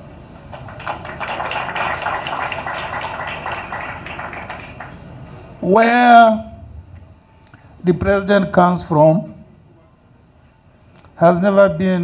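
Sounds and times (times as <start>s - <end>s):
crowd applauding: 0.4s - 5.3s.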